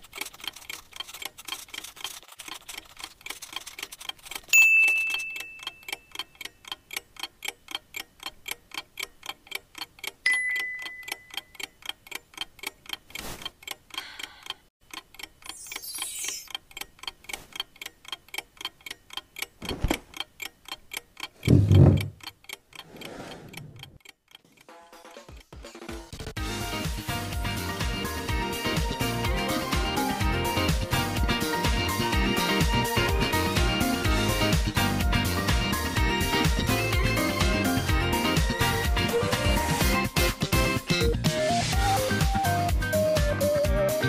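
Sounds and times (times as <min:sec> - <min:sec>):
clock ticking quickly: 0:00.0 - 0:15.6, 0:16.5 - 0:26.3
heavy low thump: 0:21.5 - 0:22.2.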